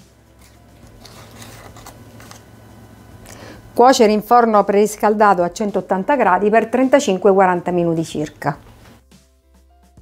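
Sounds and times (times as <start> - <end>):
dough and paper rustling: 0.3 - 2.5.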